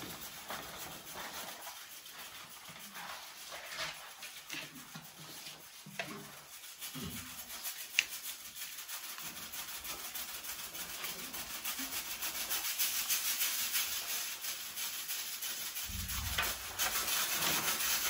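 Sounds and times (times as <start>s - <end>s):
rubbing scraping sound: 0.0s - 18.0s.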